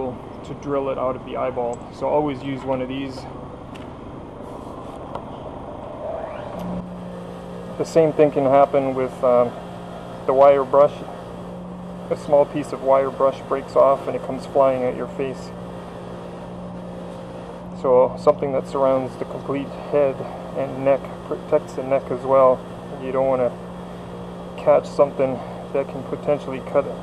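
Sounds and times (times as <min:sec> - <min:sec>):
low steady hum: 0:00.0 - 0:27.0
steady background noise: 0:00.0 - 0:27.0.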